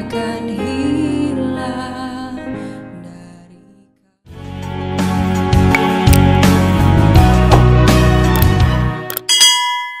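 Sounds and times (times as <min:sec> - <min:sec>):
background music: 0:00.0 - 0:09.3
bell ding: 0:09.3 - 0:10.0.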